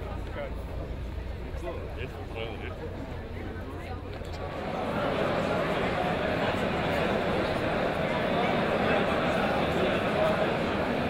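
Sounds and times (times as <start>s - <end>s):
people talking over one another: 1.5s - 11.0s.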